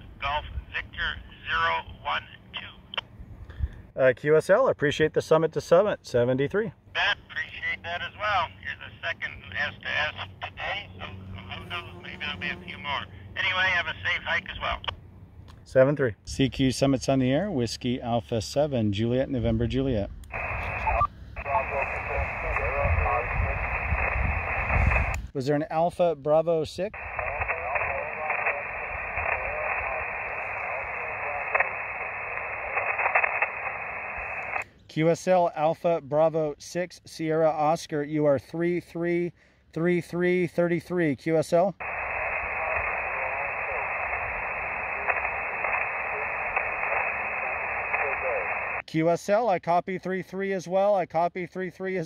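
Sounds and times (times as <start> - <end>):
tinny radio static: 0.0 - 3.0, 6.9 - 15.0, 20.3 - 25.3, 26.9 - 34.7, 41.7 - 48.9
weak voice over radio: 0.2 - 3.0, 7.0 - 14.9, 20.3 - 25.1, 27.0 - 34.6, 41.8 - 48.8.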